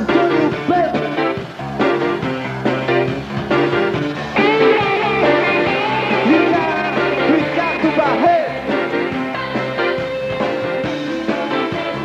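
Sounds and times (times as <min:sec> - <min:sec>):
gliding lead guitar melody: 0:00.0 - 0:12.0
rock band playing live: 0:00.0 - 0:12.0.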